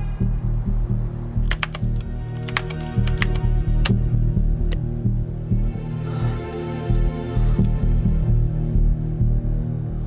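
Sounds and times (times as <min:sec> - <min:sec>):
music with low pulsing beat: 0:00.0 - 0:10.0
computer keyboard keys clicking: 0:01.5 - 0:04.0.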